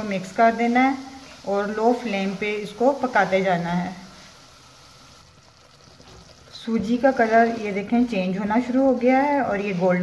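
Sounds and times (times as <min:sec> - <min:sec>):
semolina sizzling in oil: 0:00.0 - 0:10.0
wooden spatula stirring: 0:00.0 - 0:10.0.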